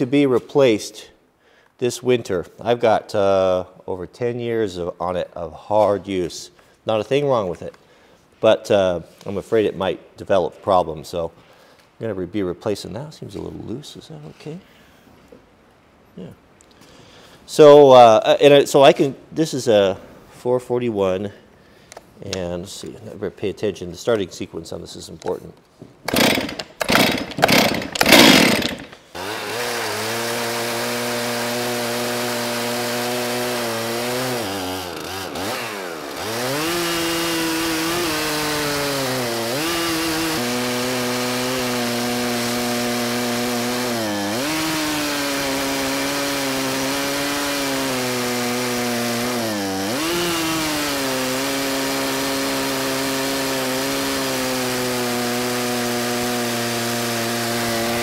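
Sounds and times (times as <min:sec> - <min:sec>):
chainsaw cutting through log: 0:26.1 - 0:58.0.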